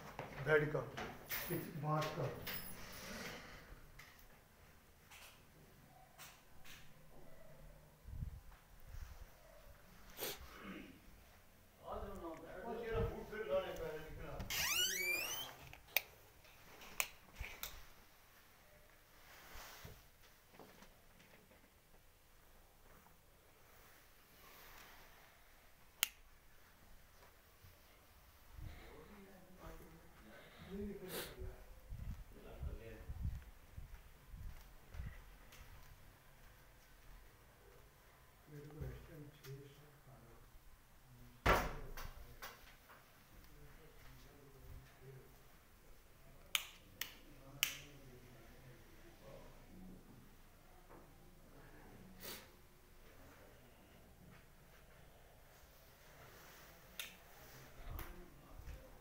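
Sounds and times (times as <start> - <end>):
door hinges squealing: 14.5 - 15.6.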